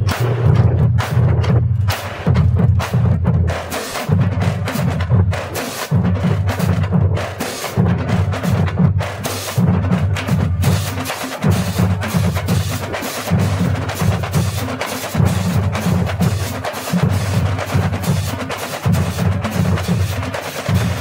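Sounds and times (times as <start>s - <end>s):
marching drumline playing: 0.0s - 21.0s.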